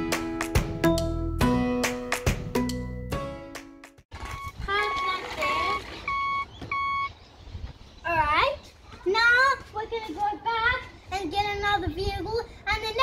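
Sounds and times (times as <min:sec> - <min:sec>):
background music: 0:00.0 - 0:04.0
electronic reversing beeps: 0:04.3 - 0:07.1
child's voice: 0:08.0 - 0:13.0.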